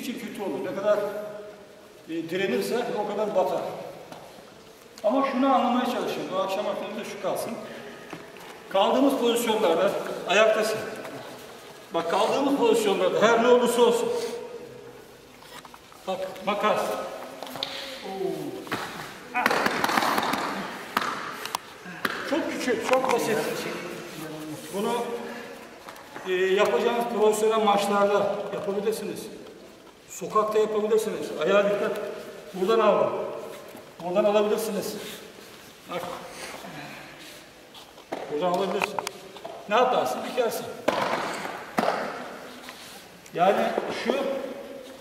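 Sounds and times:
body slapping onto foam mats: 0:18.7 - 0:21.4
group clapping hands: 0:18.8 - 0:23.2.

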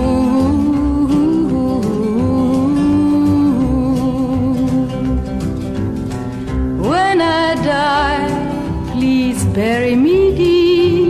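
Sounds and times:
person singing: 0:00.0 - 0:05.6, 0:06.8 - 0:11.0
acoustic guitar accompaniment: 0:00.0 - 0:11.0.

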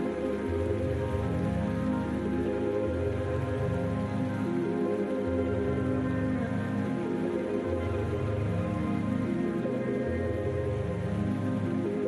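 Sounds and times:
ambient music of held chords: 0:00.0 - 0:12.0
steady rain-like hiss: 0:00.0 - 0:12.0.

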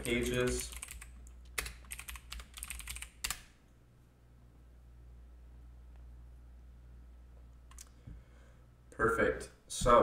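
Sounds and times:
typing on computer keyboard: 0:00.0 - 0:03.5.

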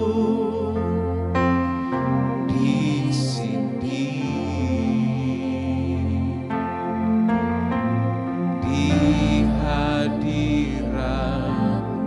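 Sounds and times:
person singing with vibrato: 0:00.0 - 0:07.3, 0:08.5 - 0:12.0
soft keyboard worship music: 0:00.0 - 0:12.0.

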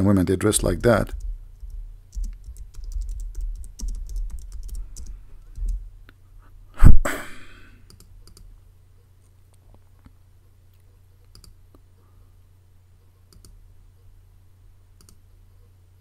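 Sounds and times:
low electrical hum: 0:00.0 - 0:16.0
computer mouse clicks: 0:07.9 - 0:08.5, 0:10.7 - 0:11.8, 0:13.3 - 0:13.6, 0:15.0 - 0:15.2.

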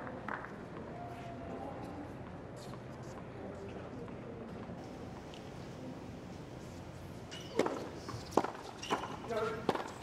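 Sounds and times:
low crowd murmur: 0:00.0 - 0:08.2
tennis ball struck by rackets: 0:07.5 - 0:10.0.

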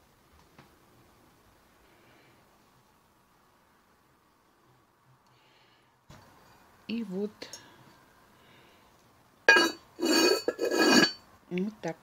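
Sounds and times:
lid scraping on rim: 0:09.5 - 0:11.2
porcelain lid clinking on dish: 0:09.5 - 0:11.2.

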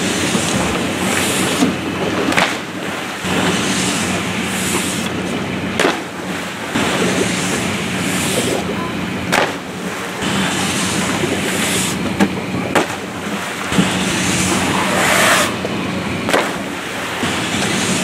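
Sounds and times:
constant low hum: 0:00.0 - 0:18.0
rushing water: 0:00.0 - 0:18.0.

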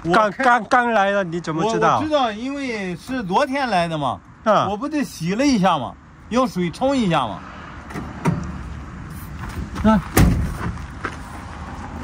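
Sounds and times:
van door slamming: 0:10.1 - 0:10.8.

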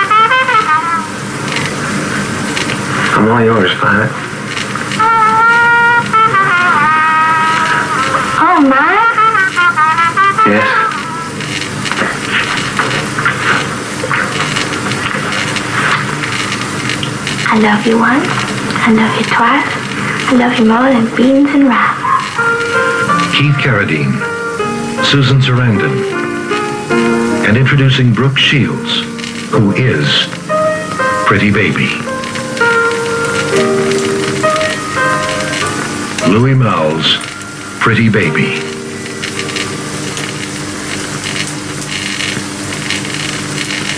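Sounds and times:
film projector hum and hiss: 0:00.0 - 0:43.9
soft film soundtrack noises: 0:00.0 - 0:43.9.

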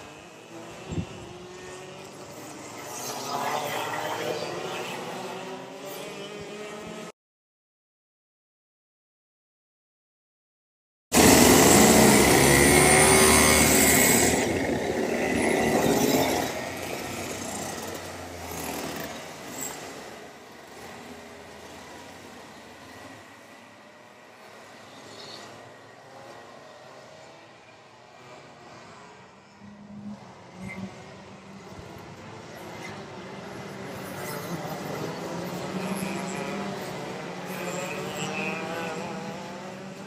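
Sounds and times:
racing kart engines: 0:00.0 - 0:07.1, 0:11.1 - 0:40.0.

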